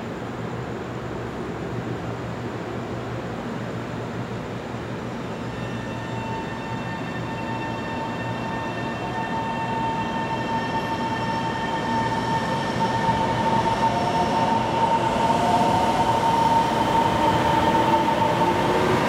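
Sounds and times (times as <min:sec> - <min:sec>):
electric train running noise: 0:05.2 - 0:19.0.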